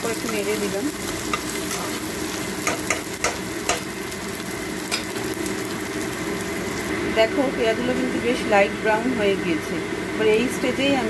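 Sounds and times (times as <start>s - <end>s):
onions sizzling in hot oil: 0.0s - 10.8s.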